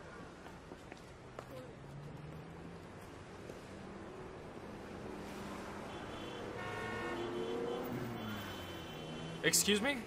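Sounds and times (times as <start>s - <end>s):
traffic hum: 0.0s - 10.0s
car horn: 5.8s - 9.4s.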